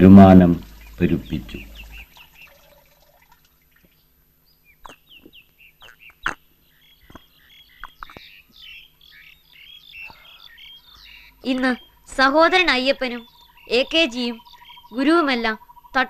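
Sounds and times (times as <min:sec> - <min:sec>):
faint steady hum: 0:00.0 - 0:16.0
small birds chirping: 0:00.0 - 0:16.0.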